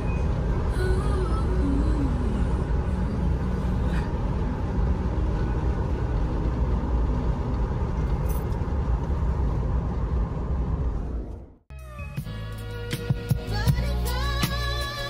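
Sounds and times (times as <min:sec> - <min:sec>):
car road noise rumble: 0:00.0 - 0:15.0.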